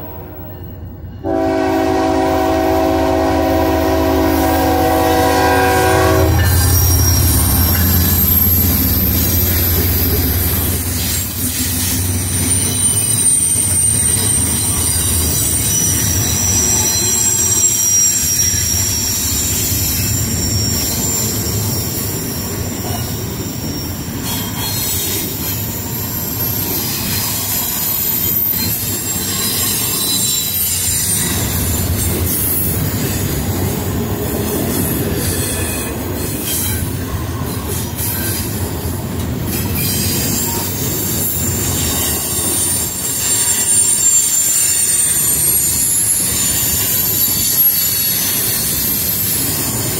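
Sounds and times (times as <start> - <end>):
train wheels rumbling on rail: 0.0 - 49.9
high wheel squeal: 1.3 - 49.9.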